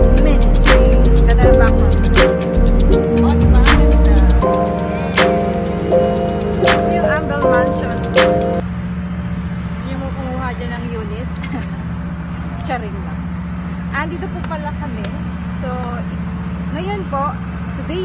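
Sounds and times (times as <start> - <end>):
road traffic drone: 0.0 - 18.0.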